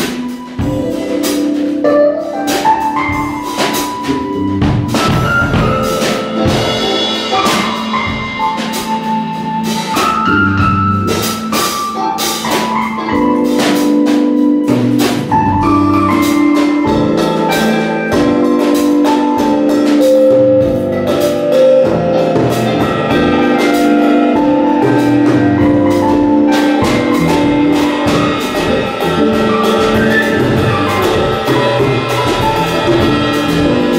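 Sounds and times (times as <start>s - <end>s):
drum kit with cymbals: 0.0s - 33.9s
melodic instrument held notes: 0.0s - 33.9s.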